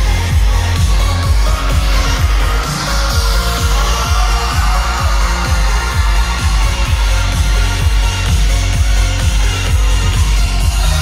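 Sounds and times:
band playing dance music: 0:00.0 - 0:11.0.

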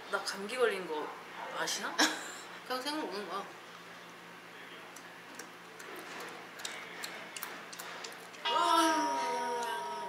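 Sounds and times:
people chewing leafy greens: 0:04.9 - 0:08.5.

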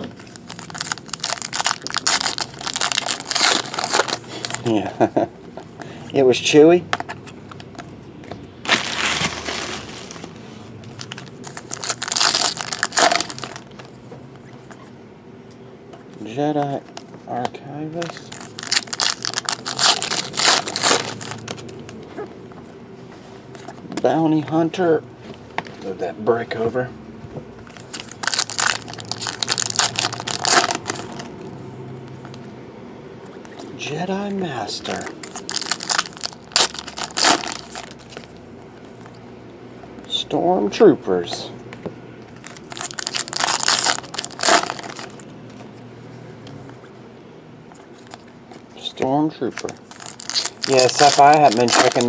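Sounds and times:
foil wrapper crinkling and tearing: 0:00.0 - 0:04.9, 0:08.7 - 0:13.8, 0:18.0 - 0:22.0, 0:27.7 - 0:31.3, 0:34.8 - 0:38.3, 0:42.4 - 0:45.2, 0:49.5 - 0:52.0.

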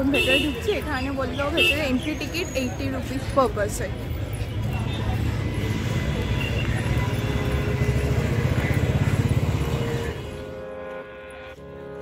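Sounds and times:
motorcycle engine rumbling: 0:04.3 - 0:10.6.

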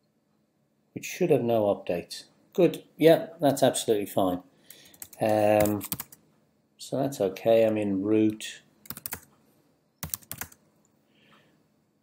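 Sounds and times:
computer keyboard keystrokes: 0:04.7 - 0:06.2, 0:08.8 - 0:09.3, 0:10.0 - 0:10.6.

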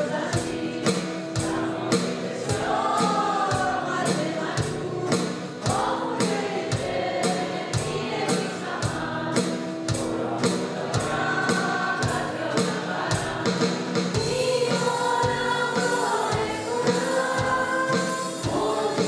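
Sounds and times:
voices singing worship song: 0:00.0 - 0:19.0.

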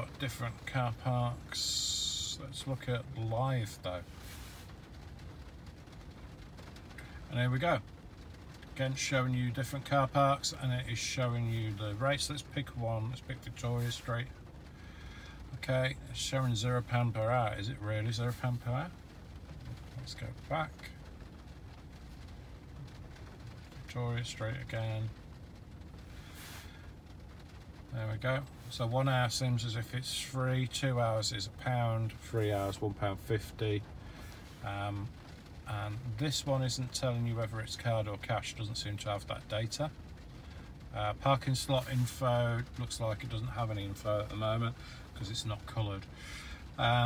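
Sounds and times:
faint hiss: 0:00.0 - 0:47.0
low car cabin noise: 0:00.0 - 0:47.0.

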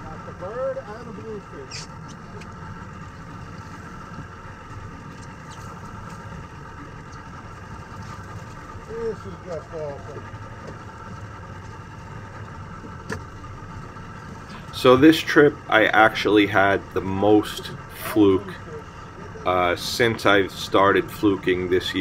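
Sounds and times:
boat engine idling: 0:00.0 - 0:22.0.

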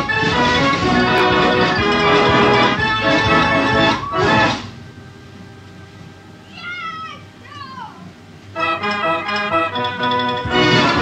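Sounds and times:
fair organ playing: 0:00.0 - 0:06.5, 0:08.0 - 0:11.0.

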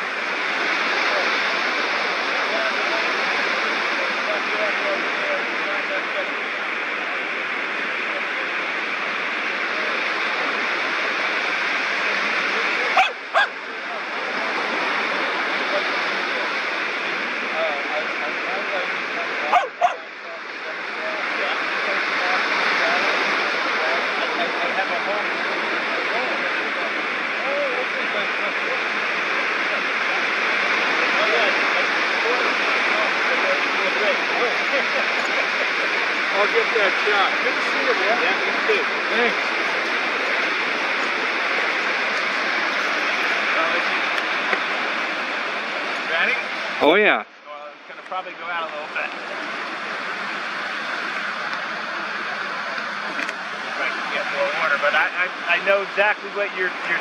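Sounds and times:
small waves breaking on beach: 0:00.0 - 0:47.0, 0:47.8 - 0:55.9.

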